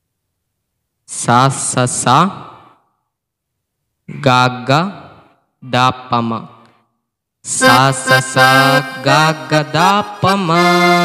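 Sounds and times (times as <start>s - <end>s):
man singing: 7.5s - 11.0s
electronic keyboard melody: 7.6s - 11.0s.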